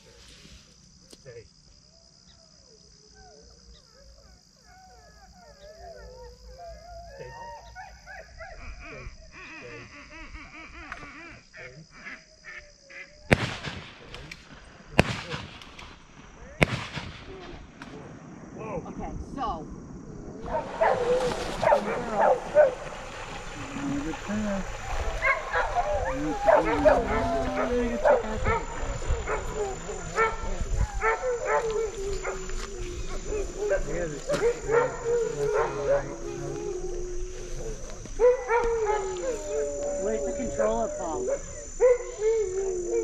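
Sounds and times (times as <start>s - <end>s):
gunshots: 13.3s - 18.2s
jumble of voices: 20.4s - 42.6s
dog whining: 25.2s - 28.7s, 31.0s - 43.0s.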